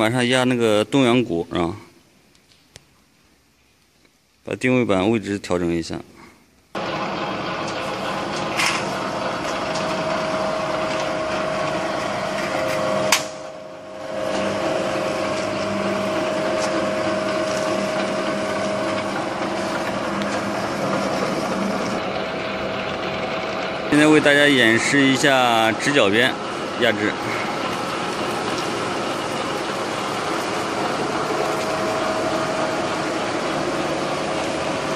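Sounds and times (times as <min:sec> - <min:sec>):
sheet metal forming machine running: 0:06.8 - 0:34.9.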